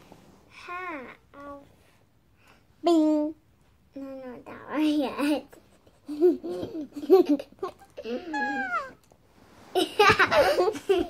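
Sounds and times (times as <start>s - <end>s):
child laughing: 6.0s - 9.0s, 9.8s - 11.0s.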